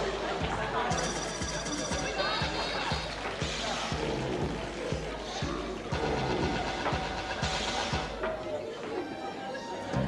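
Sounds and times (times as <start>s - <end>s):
electronic dance music: 0.0s - 8.2s
deep kick drum beat: 1.4s - 8.2s.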